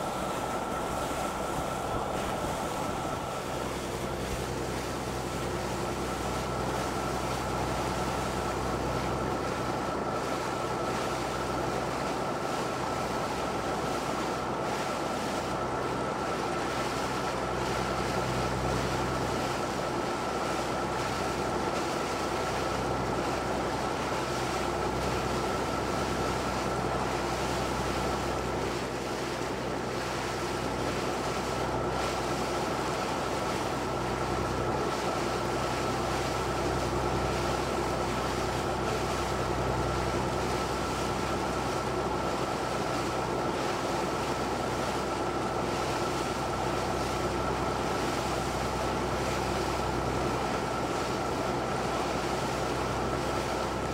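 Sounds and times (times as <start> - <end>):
sea water wash: 0.0 - 53.9
wind: 0.0 - 53.9.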